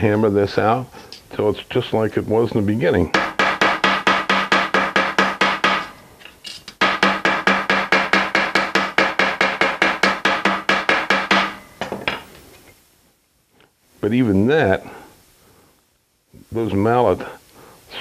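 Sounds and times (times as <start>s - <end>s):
mallet tapping copper strip: 3.1s - 6.0s, 6.7s - 12.3s.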